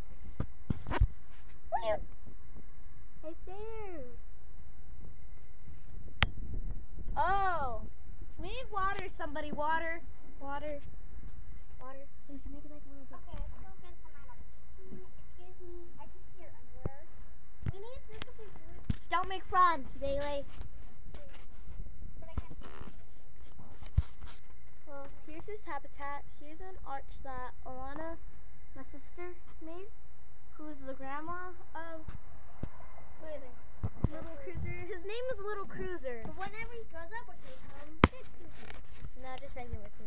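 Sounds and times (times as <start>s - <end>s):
low rumbling microphone noise: 0.0s - 40.0s.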